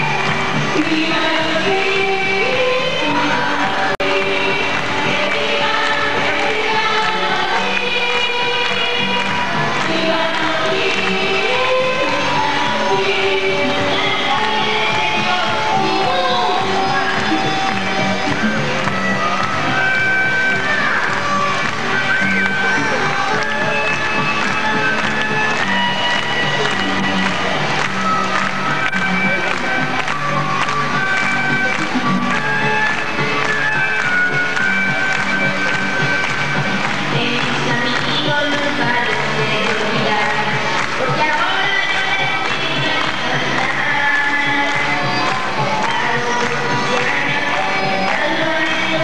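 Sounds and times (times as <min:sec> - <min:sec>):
song with steady bass line: 0:00.0 - 0:49.0.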